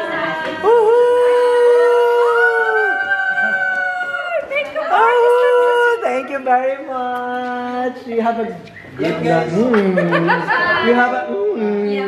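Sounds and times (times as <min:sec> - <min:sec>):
women cheering ooh: 0:00.6 - 0:06.0.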